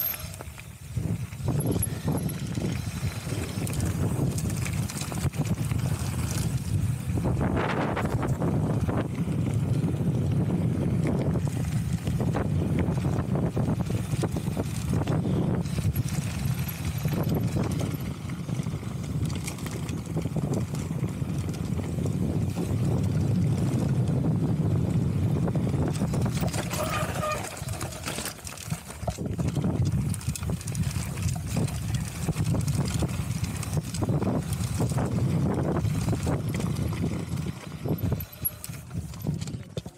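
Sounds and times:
bike rattling and knocking: 0:00.0 - 0:39.9
wind buffeting microphone: 0:00.2 - 0:28.0, 0:28.7 - 0:39.9
tyres crunching on gravel: 0:25.5 - 0:39.9.

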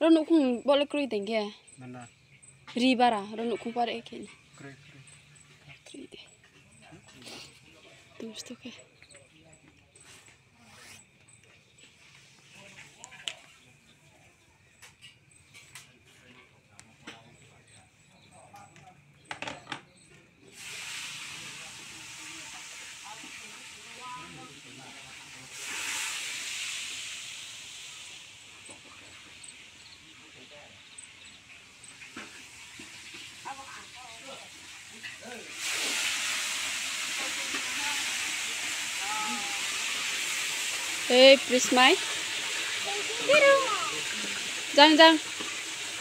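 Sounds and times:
steady rushing hiss: 0:20.5 - 0:46.0.

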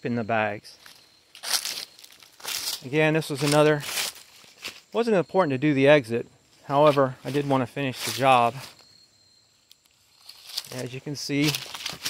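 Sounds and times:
footsteps crunching dry leaves: 0:00.7 - 0:05.2, 0:06.5 - 0:08.8, 0:10.1 - 0:12.0.

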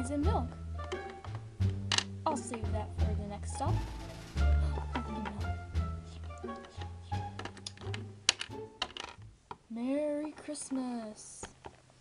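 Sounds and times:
soft background music: 0:00.0 - 0:11.4
plastic toy clicks and taps: 0:00.8 - 0:02.8, 0:06.2 - 0:09.6.

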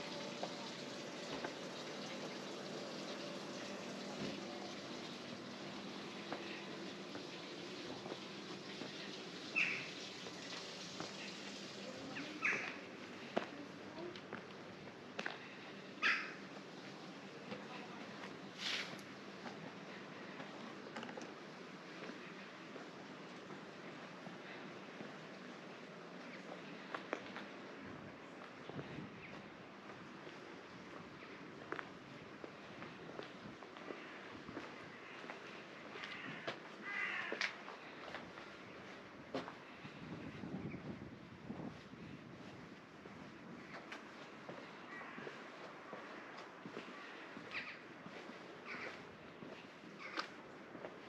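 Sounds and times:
faint footsteps: 0:00.0 - 0:51.0.

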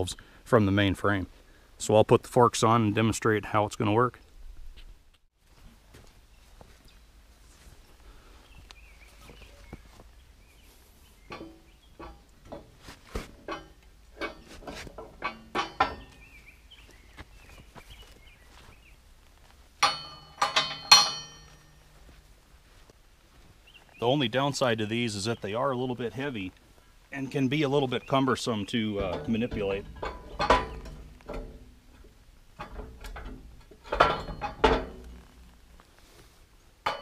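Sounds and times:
ringing metal-on-metal clanks: 0:11.3 - 0:12.8, 0:13.4 - 0:16.4, 0:19.8 - 0:22.2, 0:28.6 - 0:35.3
metal knocks and clinks: 0:11.3 - 0:16.3, 0:19.8 - 0:22.1, 0:29.0 - 0:35.5.

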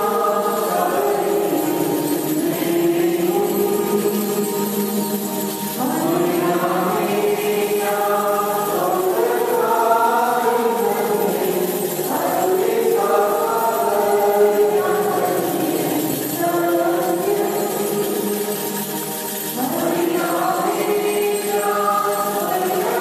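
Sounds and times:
church choir singing a hymn: 0:00.0 - 0:23.0.

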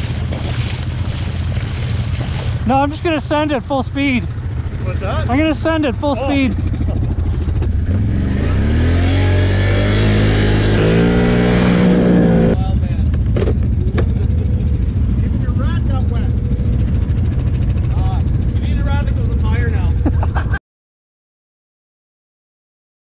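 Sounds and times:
quad engine revving: 0:00.0 - 0:20.1
quad engines idling: 0:00.0 - 0:20.6.

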